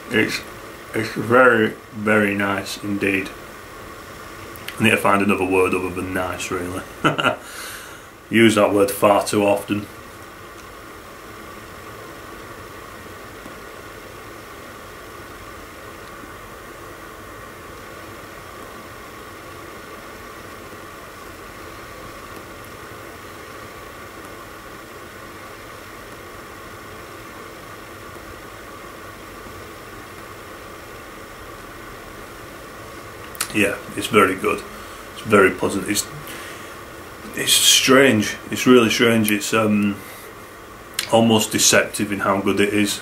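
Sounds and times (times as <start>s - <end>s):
faint steady hum: 0.0s - 43.0s
room noise hiss: 0.0s - 43.0s.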